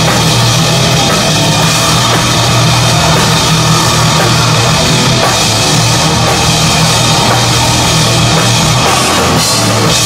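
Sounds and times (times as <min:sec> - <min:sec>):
distorted guitars: 0:00.0 - 0:10.0
drum kit: 0:00.0 - 0:10.0.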